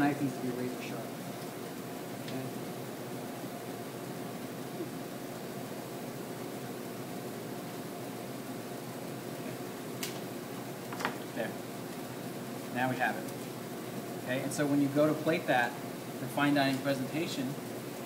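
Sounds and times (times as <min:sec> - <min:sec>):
faint ventilation hum: 0:00.0 - 0:18.0.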